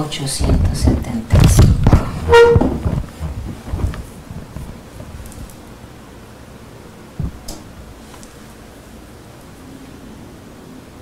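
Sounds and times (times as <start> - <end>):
vehicle horn toot: 2.2 - 2.8.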